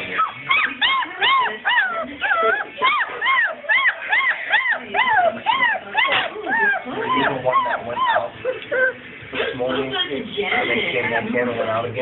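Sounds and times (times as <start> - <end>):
puppies whining: 0.0 - 9.3.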